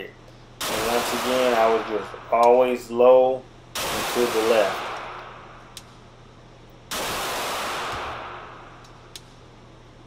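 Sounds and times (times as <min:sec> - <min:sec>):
pistol shot echoing: 0:00.6 - 0:02.6, 0:03.8 - 0:06.0, 0:06.9 - 0:09.2.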